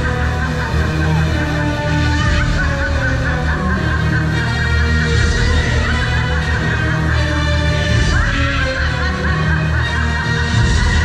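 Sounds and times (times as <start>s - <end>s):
loud soundtrack music over speakers: 0.0s - 11.0s.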